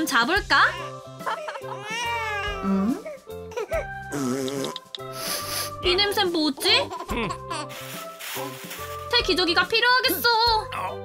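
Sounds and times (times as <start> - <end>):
light background music: 0.0 - 11.0
plastic garbage bag rustling: 7.4 - 9.8.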